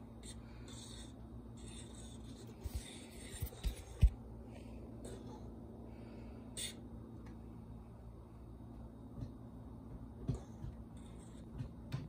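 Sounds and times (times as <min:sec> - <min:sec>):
stove low hum: 0:00.0 - 0:12.0.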